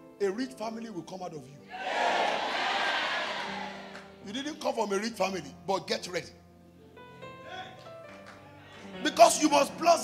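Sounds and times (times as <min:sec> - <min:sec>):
congregation shouting and cheering: 0:01.7 - 0:04.0
soft music with held tones: 0:03.5 - 0:10.0.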